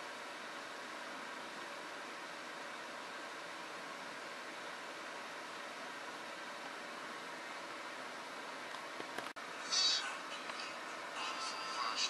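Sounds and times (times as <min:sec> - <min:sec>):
background hiss: 0:09.5 - 0:12.0.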